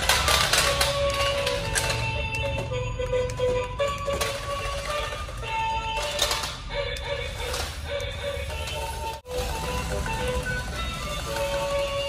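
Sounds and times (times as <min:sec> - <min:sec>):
simple melody music: 0:00.7 - 0:12.0.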